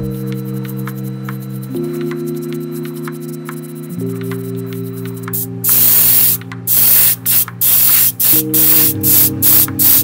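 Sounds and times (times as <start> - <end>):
airbrush spraying paint: 5.2 - 10.0.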